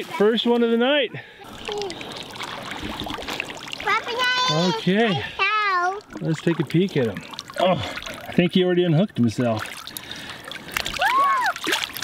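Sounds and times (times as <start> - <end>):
water splashing and trickling: 0.0 - 12.0.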